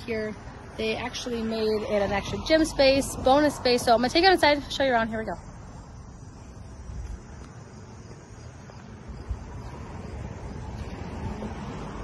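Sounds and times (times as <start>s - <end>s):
faint distant traffic: 0.0s - 12.0s
wind rumble on microphone: 5.5s - 12.0s.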